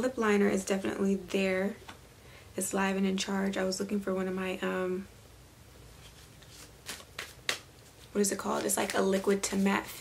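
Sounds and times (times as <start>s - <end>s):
cards being shuffled: 6.0s - 10.0s.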